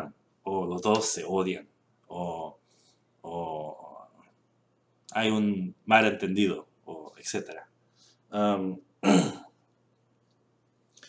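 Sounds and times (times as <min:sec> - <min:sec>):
man clearing his throat: 0:09.0 - 0:09.6.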